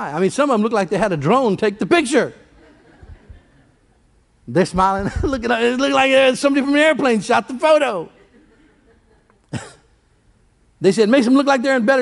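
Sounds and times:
man speaking: 0.0 - 2.4, 4.5 - 8.2, 10.8 - 12.0
man clearing throat: 9.5 - 10.0.

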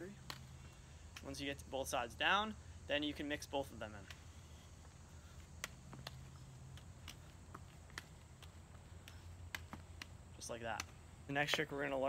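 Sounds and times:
juggling balls caught in hands: 0.0 - 1.4, 5.4 - 12.0
low steady hum: 0.0 - 12.0.

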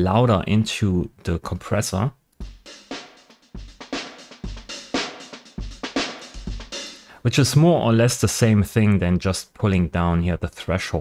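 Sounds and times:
drum kit playing a groove: 2.4 - 7.2.

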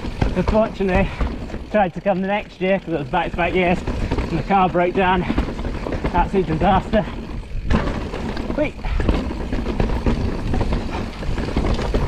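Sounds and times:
bike rattling knocks: 0.0 - 12.0
bike tyres rumbling on dirt: 0.0 - 12.0.

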